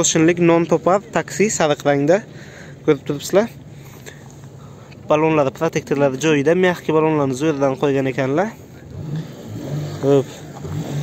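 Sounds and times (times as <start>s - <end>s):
car engine running: 5.4s - 11.0s.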